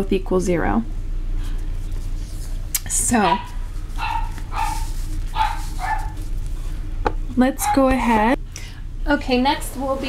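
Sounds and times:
dog barking: 3.2 - 6.2, 7.6 - 8.0.

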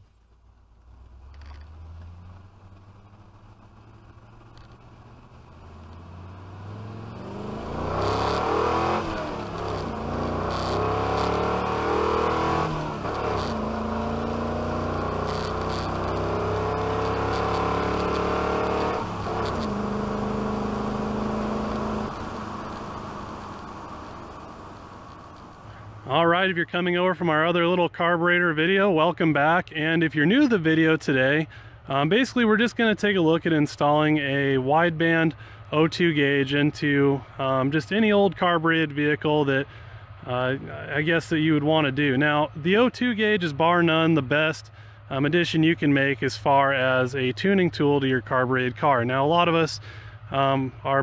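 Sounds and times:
truck engine accelerating through gears: 0.6 - 26.2.

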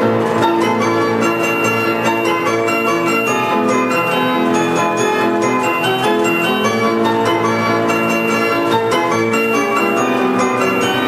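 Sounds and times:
organ-pipe chords: 0.0 - 11.0
struck bells ringing: 0.7 - 11.0.

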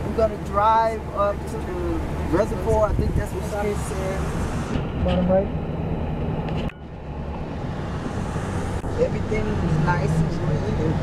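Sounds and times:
engine and tyre rumble: 0.0 - 11.0
wind rushing past windows: 2.0 - 10.0.

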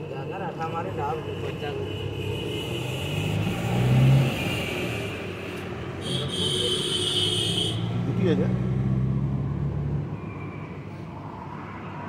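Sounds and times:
vehicle passing: 3.0 - 5.0, 7.8 - 12.0.

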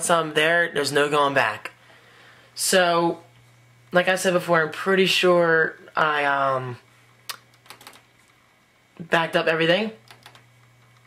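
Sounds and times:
laptop keys clicking: 7.3 - 8.0, 10.0 - 11.0.

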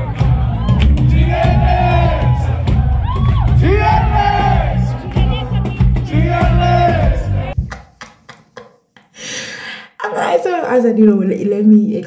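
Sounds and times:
woman gasping: 9.1 - 10.0.

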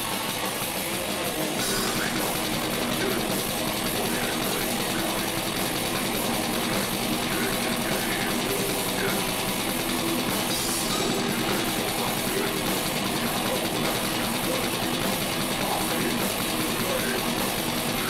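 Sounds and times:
distorted guitars: 0.0 - 18.0
fast drumming: 0.0 - 18.0
harsh vocal: 0.0 - 18.0
heavy metal band playing: 0.0 - 18.0.

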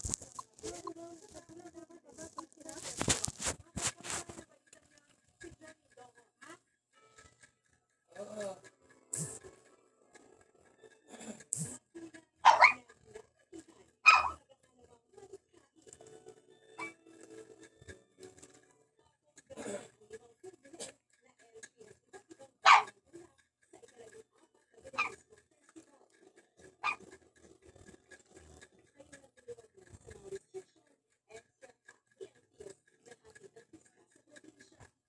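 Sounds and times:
dog barking: 12.4 - 12.8, 14.0 - 14.4, 16.8 - 17.0, 22.6 - 23.0, 24.9 - 25.2, 26.8 - 27.2.

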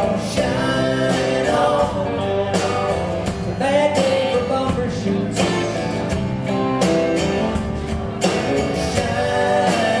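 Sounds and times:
live band music: 0.0 - 10.0
strummed acoustic guitar: 0.0 - 10.0.

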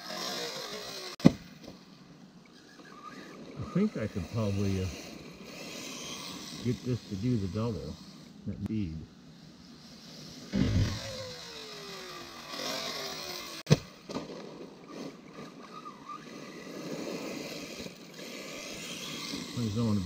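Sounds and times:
rc car motor whine: 0.0 - 20.0
sharp impact crack: 10.5 - 11.1.

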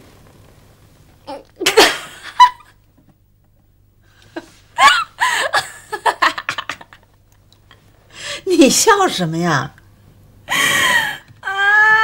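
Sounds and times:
woman laughing loudly: 1.6 - 2.8, 4.8 - 7.2.

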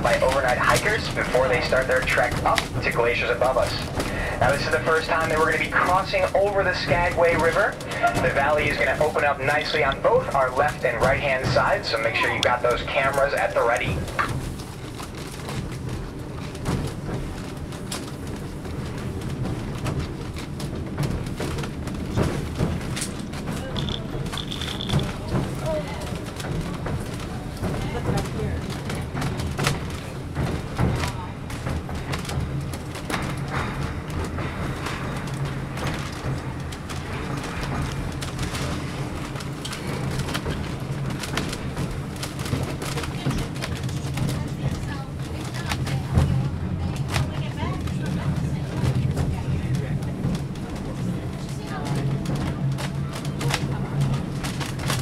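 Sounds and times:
train running rumble: 0.0 - 55.0
wheels and car body clicking: 14.0 - 46.4.

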